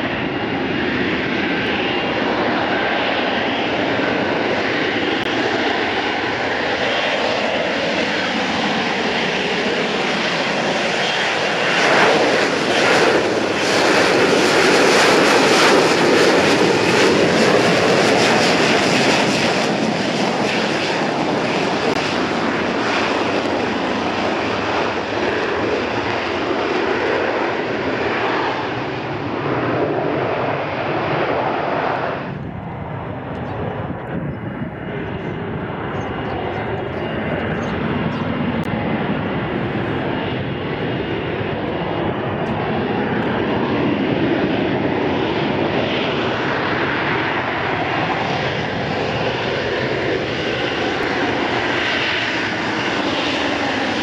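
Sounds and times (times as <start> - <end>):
fighter jet engine roar: 0.0 - 54.0.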